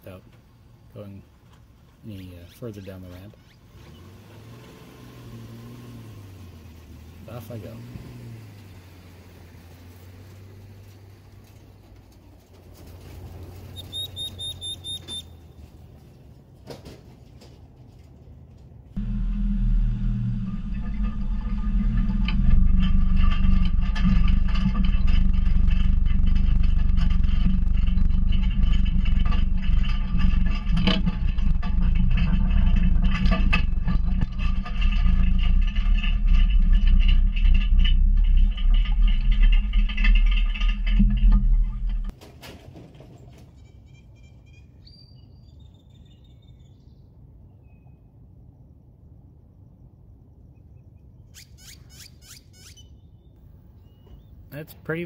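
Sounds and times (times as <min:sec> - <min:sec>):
pickup truck engine rumble: 0:03.4 - 0:43.6.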